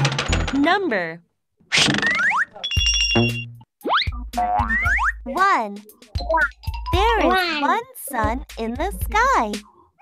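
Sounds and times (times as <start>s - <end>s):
springy boing sounds: 3.2s - 5.2s.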